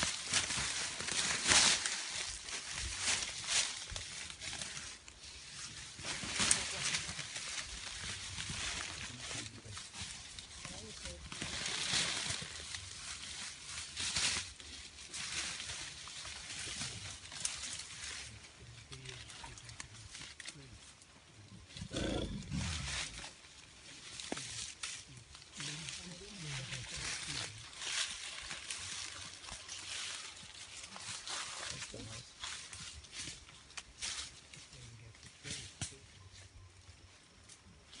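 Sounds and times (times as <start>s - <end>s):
faint rustles: 0.0s - 38.0s
gorilla low rough vocalization: 21.6s - 23.1s.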